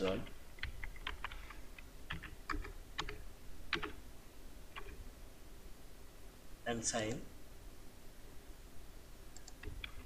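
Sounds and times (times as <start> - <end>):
keyboard typing: 0.6 - 4.0, 4.7 - 5.0, 9.4 - 10.0.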